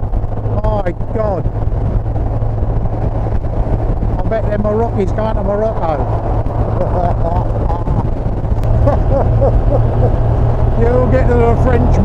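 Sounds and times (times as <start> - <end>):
motorcycle engine cruising: 0.0 - 12.0
wind and road noise: 0.0 - 12.0
people talking: 0.5 - 1.5, 4.2 - 6.0, 6.8 - 8.1, 10.8 - 12.0
person laughing: 8.7 - 10.3.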